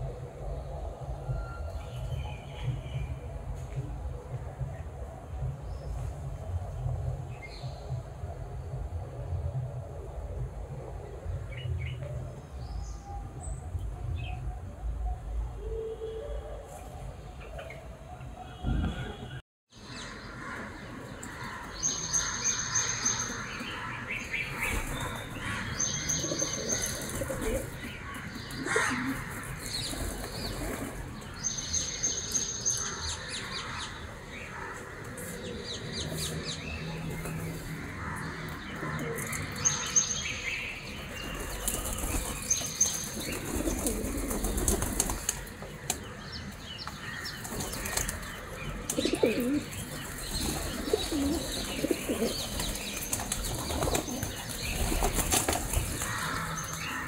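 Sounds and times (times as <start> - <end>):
small birds chirping: 39.0 - 57.0.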